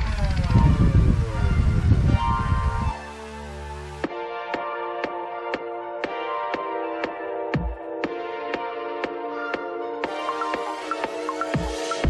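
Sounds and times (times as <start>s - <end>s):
wind buffeting microphone: 0.0s - 3.0s
background music with falling tones: 0.4s - 12.0s.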